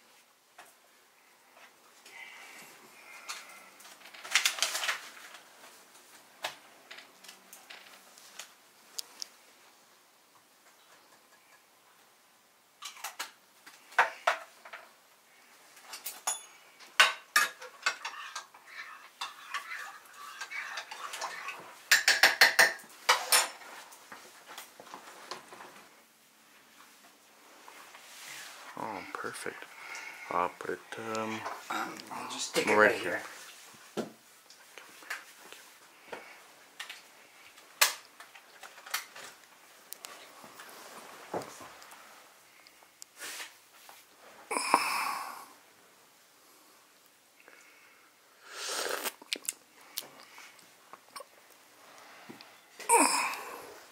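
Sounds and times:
cups and objects knocking: 0:21.9 - 0:23.4.

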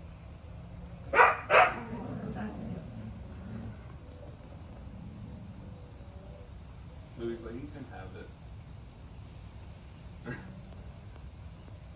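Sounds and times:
dog barking: 0:01.1 - 0:02.0.

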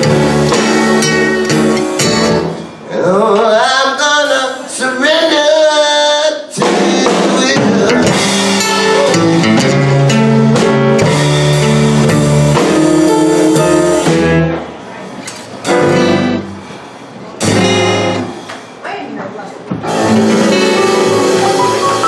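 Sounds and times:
amplified acoustic guitar chords: 0:00.0 - 0:03.1, 0:06.8 - 0:14.8, 0:15.7 - 0:16.7, 0:17.4 - 0:18.4, 0:19.8 - 0:22.0
live blues band playing: 0:00.0 - 0:18.8, 0:19.8 - 0:22.0
drums: 0:00.0 - 0:18.9, 0:19.6 - 0:22.0.

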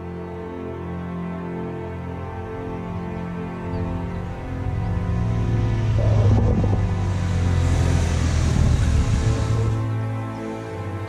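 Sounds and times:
background music drone: 0:00.0 - 0:11.0
motorcycle passing on wet road: 0:03.9 - 0:10.0.

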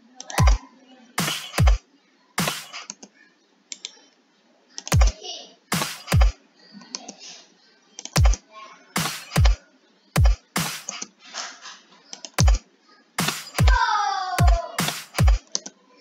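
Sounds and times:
sharp clap hits: 0:01.2 - 0:01.8, 0:02.4 - 0:02.8, 0:05.7 - 0:06.3, 0:09.0 - 0:09.6, 0:10.2 - 0:11.0, 0:13.2 - 0:13.8, 0:14.4 - 0:15.4
mouse clicks: 0:02.5 - 0:04.0, 0:08.0 - 0:08.4.

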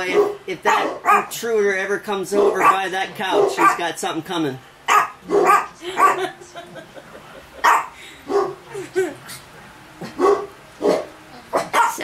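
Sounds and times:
dog barking: 0:00.0 - 0:01.4, 0:02.4 - 0:03.9, 0:04.9 - 0:06.4, 0:07.6 - 0:08.6, 0:10.0 - 0:12.0.

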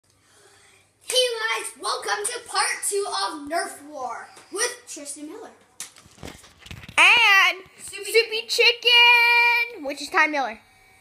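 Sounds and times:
child speaking: 0:01.1 - 0:05.7, 0:07.0 - 0:10.6.

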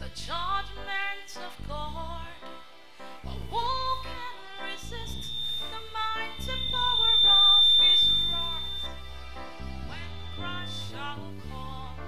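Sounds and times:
woman singing into a microphone: 0:00.0 - 0:02.6, 0:03.4 - 0:08.8, 0:09.9 - 0:12.0
instrumental backing with bass line: 0:00.0 - 0:12.0
steady high-pitched tone: 0:03.2 - 0:11.5.

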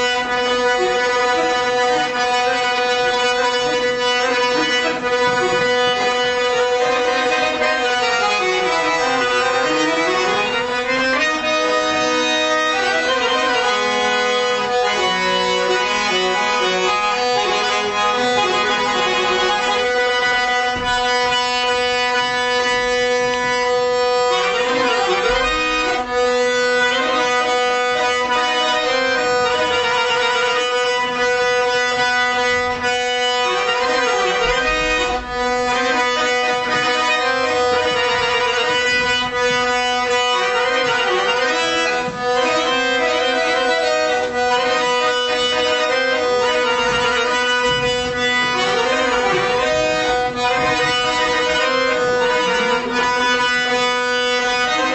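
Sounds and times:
button accordion melody: 0:00.0 - 0:54.9
string instruments: 0:00.0 - 0:54.9.

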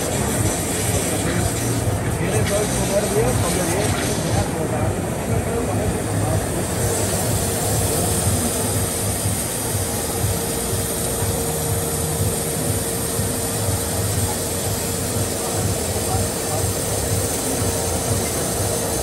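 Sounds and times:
high-pressure water jet hissing: 0:00.0 - 0:19.0
steady hum: 0:00.0 - 0:19.0.

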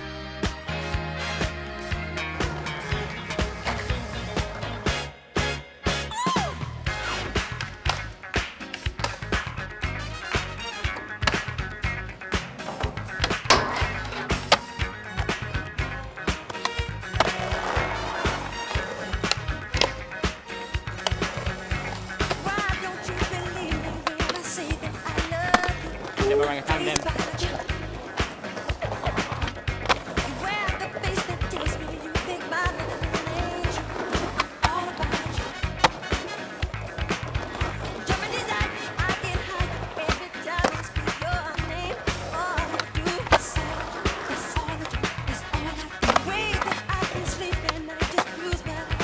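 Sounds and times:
music with a beat: 0:00.0 - 0:49.0
skateboards rolling on concrete: 0:00.0 - 0:49.0.

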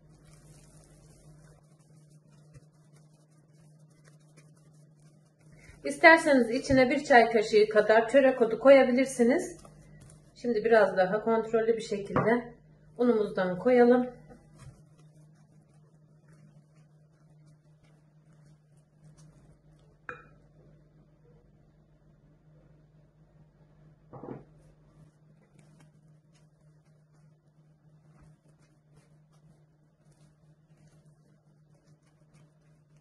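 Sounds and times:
spatula mixing dough in glass bowl: 0:00.0 - 0:20.8, 0:24.2 - 0:33.0
low steady hum: 0:00.0 - 0:33.0.

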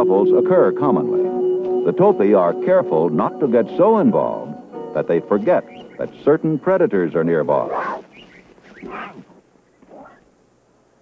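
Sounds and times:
lion cubs mewing: 0:07.6 - 0:10.3.

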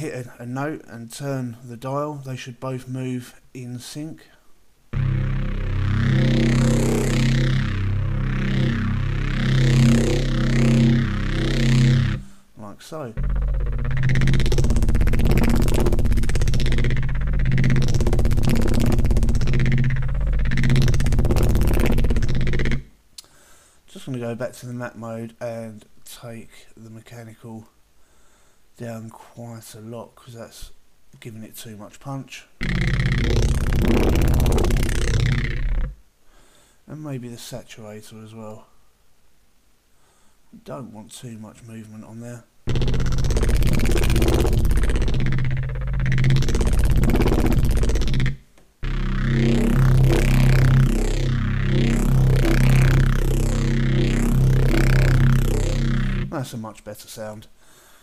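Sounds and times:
growling bass synth note: 0:05.0 - 0:12.4, 0:13.2 - 0:22.9, 0:32.6 - 0:36.0, 0:42.7 - 0:56.4.

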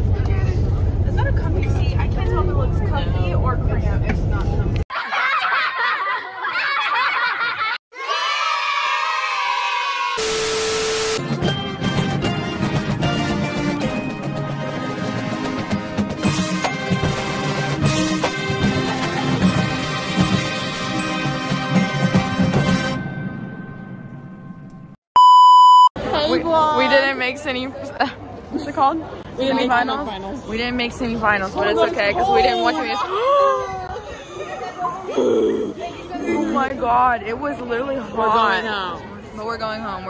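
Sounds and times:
loud electronic beep: 0:10.2 - 0:11.2, 0:25.2 - 0:25.9
marching band playing: 0:10.9 - 0:23.0
steady beep: 0:25.2 - 0:25.9
burst of many voices: 0:26.0 - 0:40.0.

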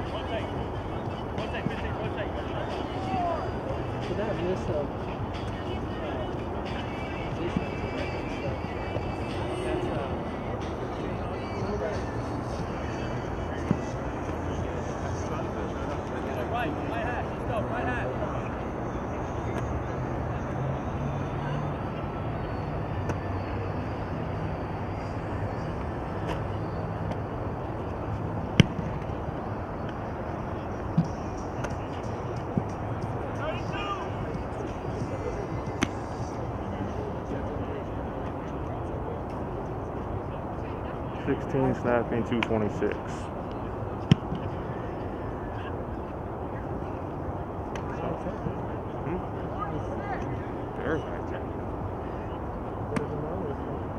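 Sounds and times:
distant chatter of players: 0:00.0 - 0:53.9.

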